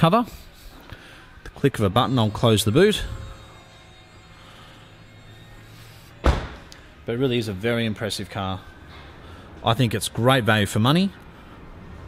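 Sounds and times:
power tailgate motor whine: 0:06.2 - 0:06.8.

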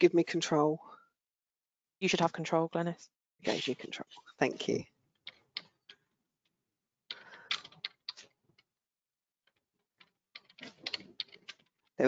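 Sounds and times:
keyboard and mouse clicks: 0:07.1 - 0:08.3, 0:10.4 - 0:11.7.

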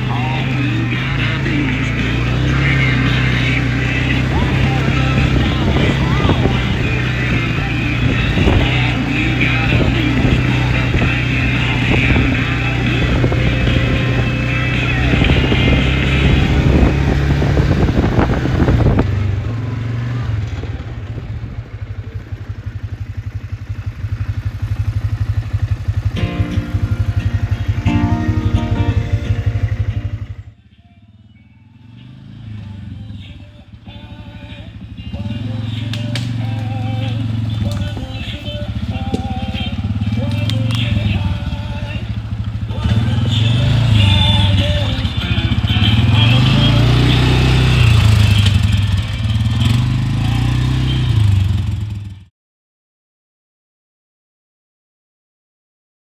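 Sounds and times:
song with singing: 0:00.0 - 0:20.4, 0:26.1 - 0:51.1
atv engine running: 0:00.0 - 0:52.3.

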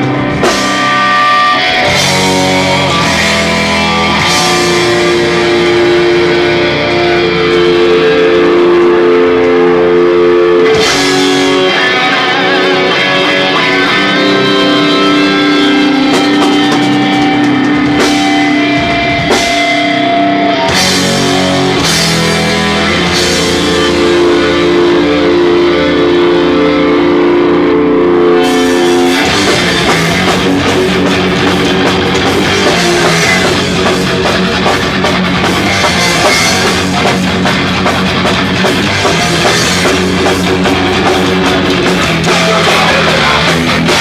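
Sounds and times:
distorted electric guitars: 0:00.0 - 0:44.0.

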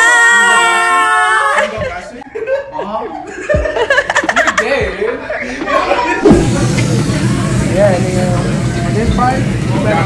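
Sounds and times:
people talking: 0:00.4 - 0:10.0
people laughing: 0:01.4 - 0:07.1.

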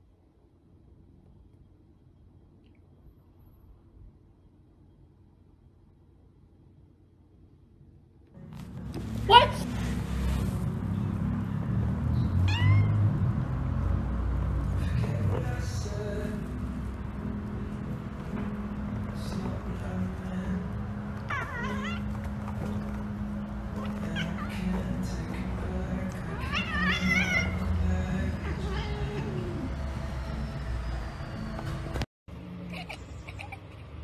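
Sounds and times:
cat meowing: 0:12.4 - 0:13.1, 0:21.3 - 0:22.1, 0:26.4 - 0:27.7.

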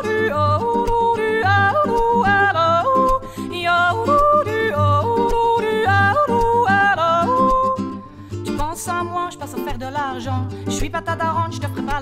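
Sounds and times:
woman yodeling: 0:00.0 - 0:08.0
acoustic guitar accompaniment: 0:00.0 - 0:12.0.

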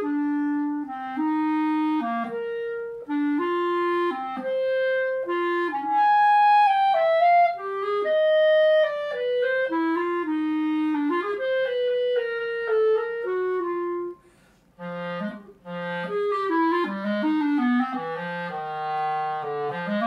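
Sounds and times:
solo clarinet melody: 0:00.0 - 0:20.0.

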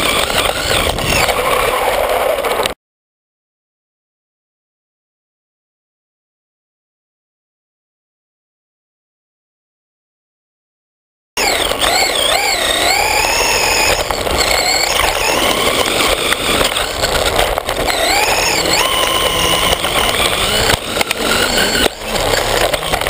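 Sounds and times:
rc car motor whine: 0:00.0 - 0:02.8, 0:11.4 - 0:23.0.

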